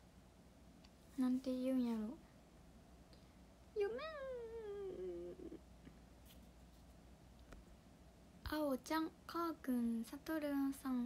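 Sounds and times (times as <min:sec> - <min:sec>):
woman whining in puzzlement: 0:03.8 - 0:05.6.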